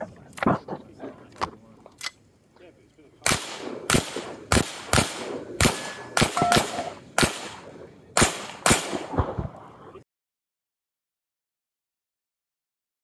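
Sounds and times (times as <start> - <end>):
pistol firing rapid shots: 3.2 - 9.4.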